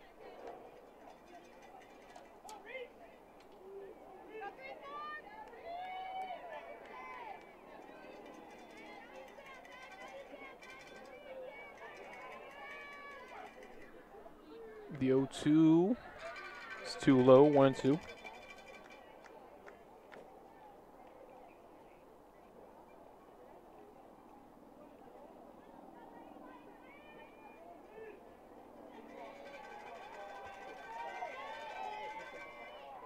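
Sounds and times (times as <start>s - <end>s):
faint crowd chatter: 0.0s - 33.0s
loud shouts: 9.5s - 13.5s, 29.0s - 33.0s.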